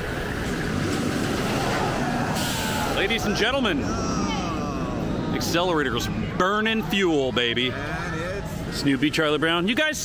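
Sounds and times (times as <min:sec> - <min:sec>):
roller coaster launch rushing: 0:00.1 - 0:05.3.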